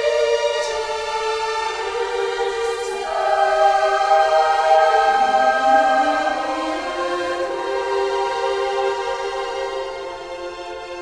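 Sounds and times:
choir singing a hymn: 0.0s - 10.5s.

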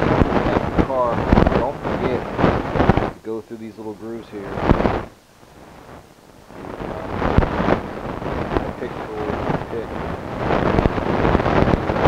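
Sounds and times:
low rumbling on microphone: 0.0s - 12.0s.

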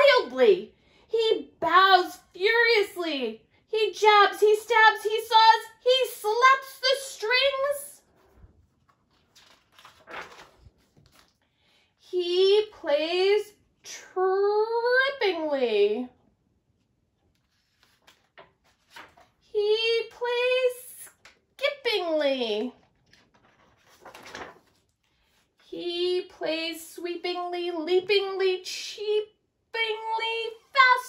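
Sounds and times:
faint handling sounds: 8.0s - 11.5s, 16.7s - 19.4s, 22.8s - 25.6s
paper page turning: 8.1s - 11.4s, 17.2s - 19.4s, 22.8s - 25.6s.

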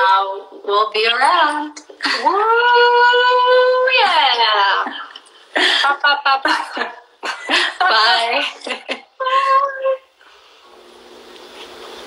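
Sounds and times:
background hiss: 3.5s - 12.0s.

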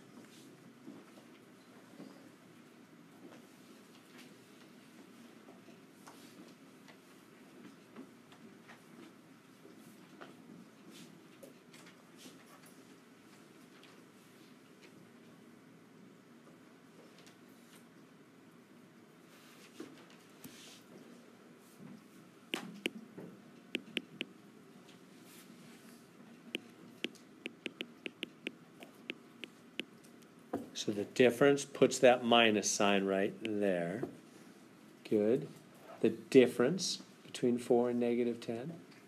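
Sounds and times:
faint room noise: 0.0s - 39.0s
faint clicks and taps: 23.8s - 24.3s, 26.6s - 30.6s
stylus tapping glass screen: 23.8s - 24.3s, 27.0s - 28.6s.

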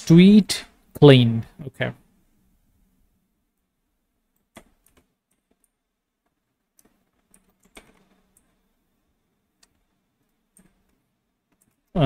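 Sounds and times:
computer keyboard keystrokes: 4.4s - 5.8s, 6.7s - 8.6s, 10.5s - 11.9s.

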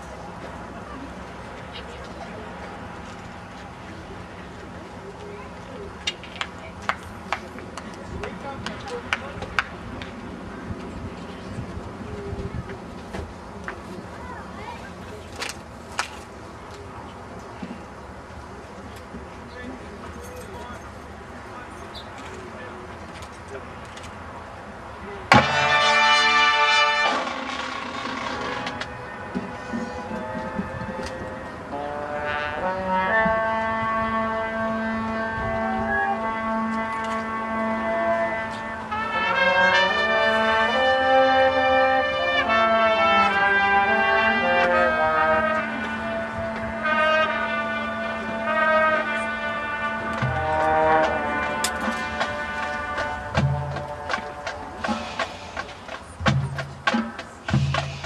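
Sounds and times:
drum hits: 25.3s - 25.8s, 50.2s - 58.0s
brass band held chords: 25.3s - 55.9s, 56.5s - 58.0s.

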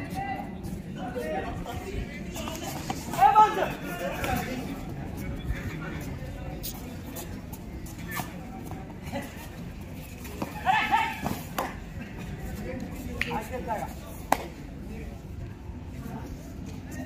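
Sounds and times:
crowd murmur: 0.0s - 17.0s
players shouting: 2.8s - 4.7s, 10.4s - 11.8s.

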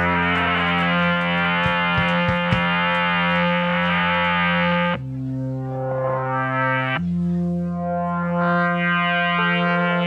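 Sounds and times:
live band holding chord: 0.0s - 7.7s
electric guitar with effects: 0.0s - 10.0s.

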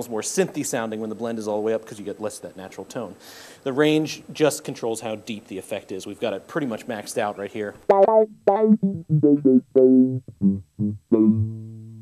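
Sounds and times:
filtered electric bass notes: 7.9s - 12.0s.

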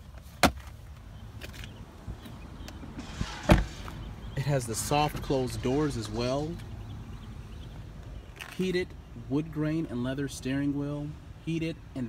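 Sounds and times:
car door shutting with thud: 3.2s - 3.8s.

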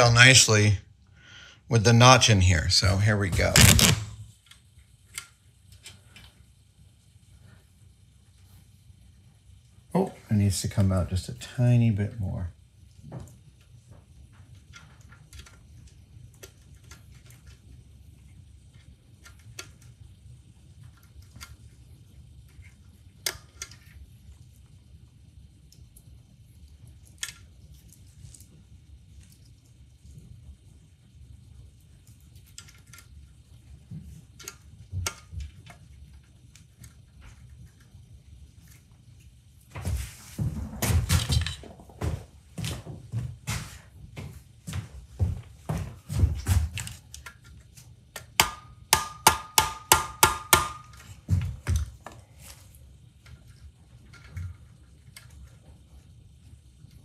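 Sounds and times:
light clicks of small parts: 4.4s - 6.4s, 32.0s - 33.4s.

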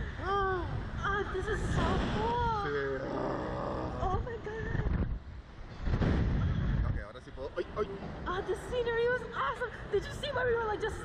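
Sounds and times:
wind rushing over microphone: 0.0s - 7.2s.

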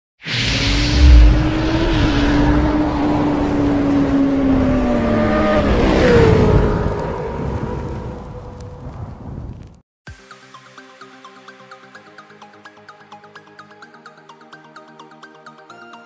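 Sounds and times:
deep boom: 0.7s - 2.7s.

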